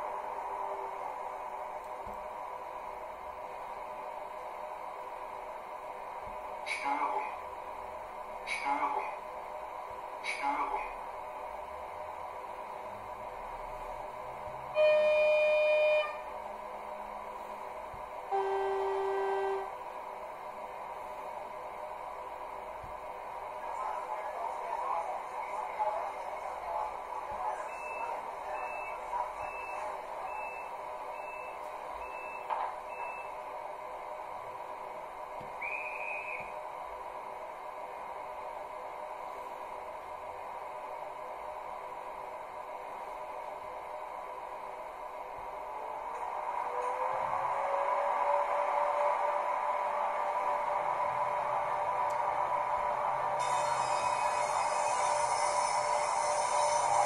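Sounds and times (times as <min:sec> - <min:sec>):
high train horn blast: 0:14.7 - 0:16.2, 0:18.3 - 0:19.8
lower train horn blast: 0:14.7 - 0:16.3, 0:18.3 - 0:19.8
conductor's whistle: 0:14.8 - 0:16.2, 0:18.3 - 0:19.7, 0:35.6 - 0:36.5.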